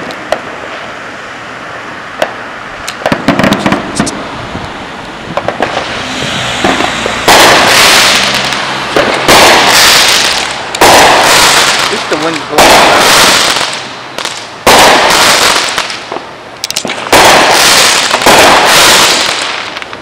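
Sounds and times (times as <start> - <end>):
loud firework bursts: 0.0 - 20.0
fireworks popping: 2.2 - 4.2, 5.3 - 20.0.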